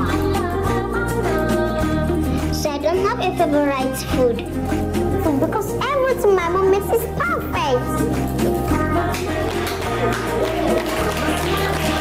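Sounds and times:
instrumental background music: 0.0s - 12.0s.

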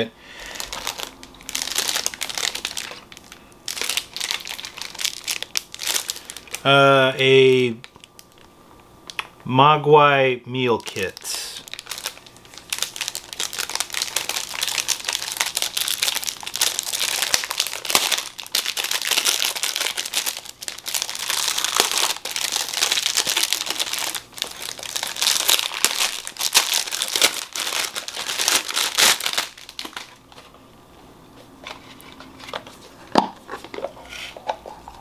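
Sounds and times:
plastic wrap crinkling: 0.0s - 9.3s, 10.7s - 30.6s.

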